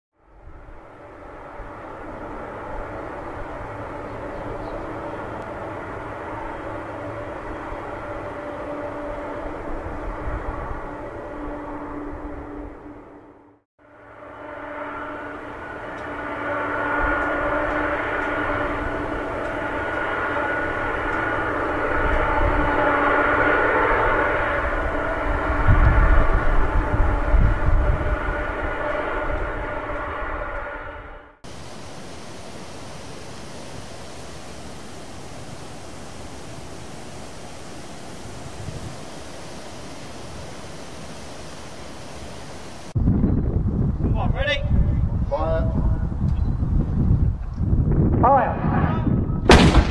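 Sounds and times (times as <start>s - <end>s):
deep rumble: 0.2s - 31.4s, 42.9s - 49.9s
jet engines whining: 0.4s - 43.0s
steady hiss: 31.5s - 43.0s.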